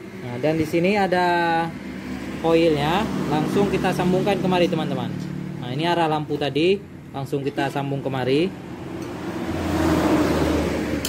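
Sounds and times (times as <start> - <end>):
motor vehicle passing: 0.0 - 11.0.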